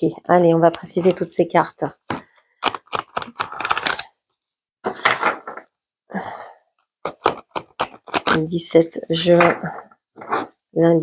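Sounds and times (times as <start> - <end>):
cards being shuffled: 2.6 - 4.1.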